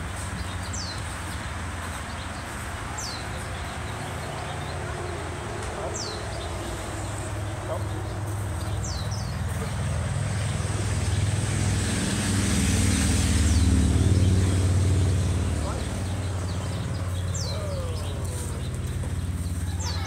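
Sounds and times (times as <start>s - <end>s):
faint distant voices: 13.5s - 20.0s.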